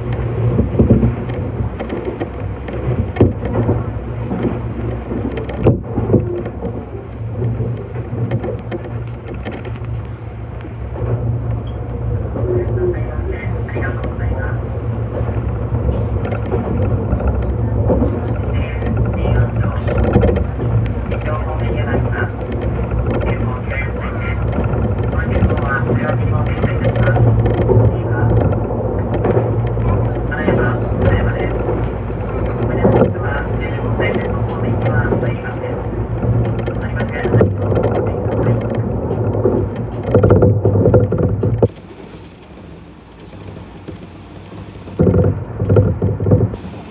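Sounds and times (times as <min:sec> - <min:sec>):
electric train running hum: 0:00.0 - 0:46.9
wheel and rail noise: 0:00.0 - 0:46.9.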